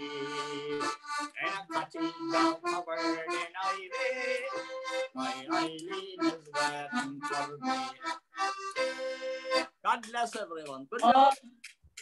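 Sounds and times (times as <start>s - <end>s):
accordion playing folk tune: 0.0s - 10.4s, 11.0s - 11.4s.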